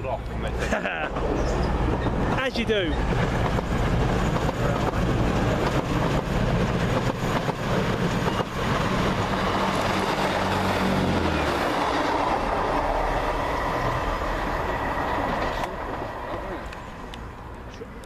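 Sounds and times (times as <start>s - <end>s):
rumble of passing train: 0.0s - 18.0s
train engine drone: 0.0s - 18.0s.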